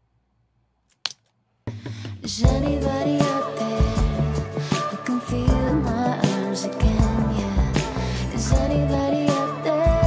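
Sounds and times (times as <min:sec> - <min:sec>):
pop song with singing: 0:01.7 - 0:10.0.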